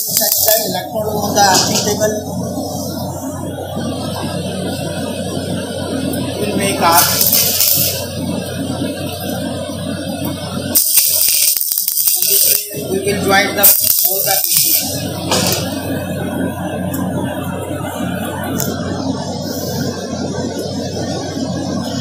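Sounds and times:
low hum: 0.0 - 22.0
welding arc crackling: 0.0 - 22.0.

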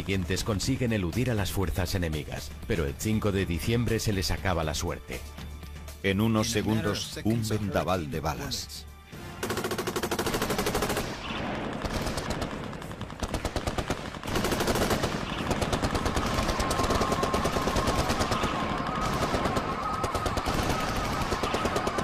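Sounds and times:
automatic gunfire: 9.4 - 22.0.

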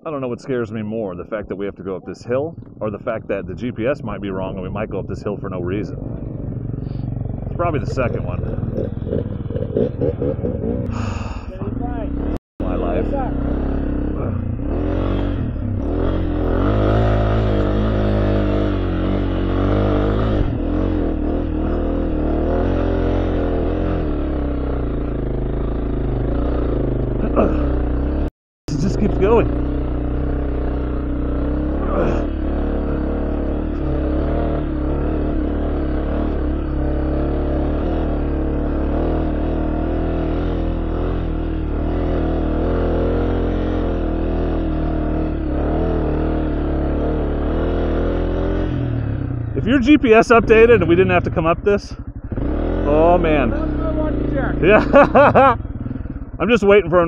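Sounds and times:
dirt bike engine running: 2.5 - 57.0.

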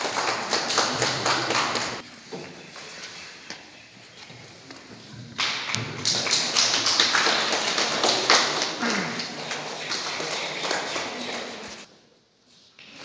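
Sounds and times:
audience applauding: 0.0 - 2.0, 5.4 - 11.9.

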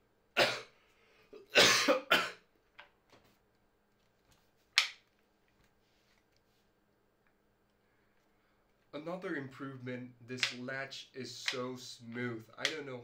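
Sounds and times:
man coughing: 1.4 - 2.4.

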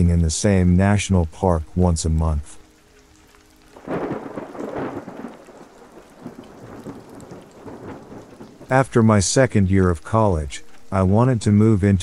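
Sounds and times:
steady rain: 0.0 - 12.0
thunder rumbling: 3.8 - 11.6.

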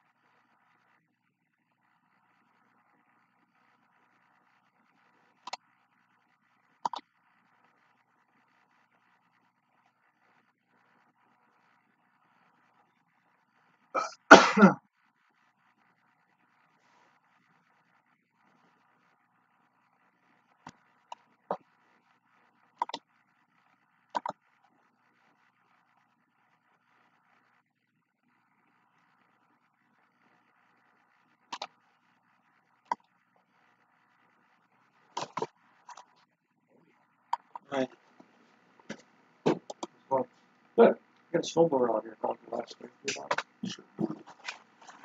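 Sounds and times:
person sneezing: 14.0 - 14.8.

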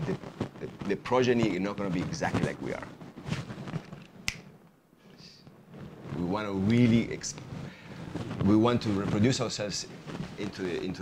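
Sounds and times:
sharp click: 4.3 - 4.5.

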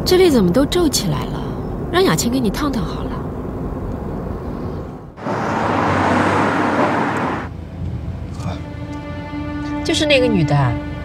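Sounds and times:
car road noise rumble: 0.0 - 9.0
loud rushing noise: 5.2 - 7.5.

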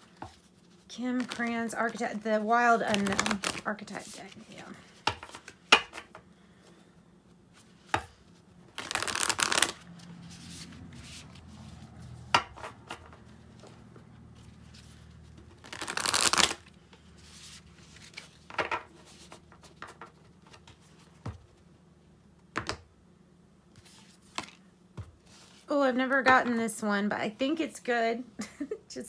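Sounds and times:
cards being riffle shuffled: 0.2 - 2.0, 2.9 - 4.4, 8.7 - 11.8, 14.6 - 21.1, 23.8 - 24.6.

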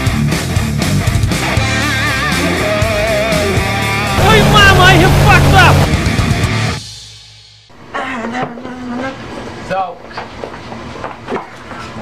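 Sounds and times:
indistinct voices: 4.2 - 6.2.

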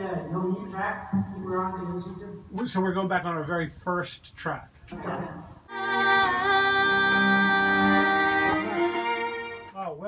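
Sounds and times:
string section bowed chord: 5.7 - 9.8.

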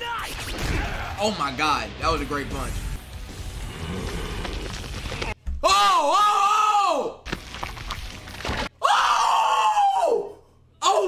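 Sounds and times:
man screaming: 5.6 - 7.2, 8.8 - 11.0.

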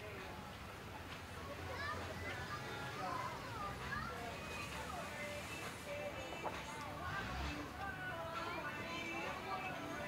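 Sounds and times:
low street hum: 0.0 - 10.0
passersby talking: 0.0 - 10.0.

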